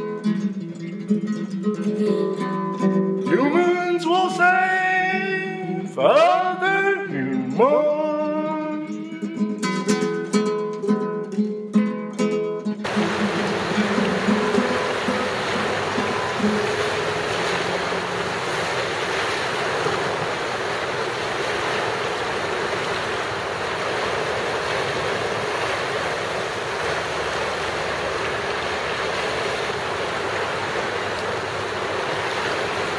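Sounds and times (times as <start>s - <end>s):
music: 0.0s - 17.2s
fast-flowing river water: 12.8s - 32.9s.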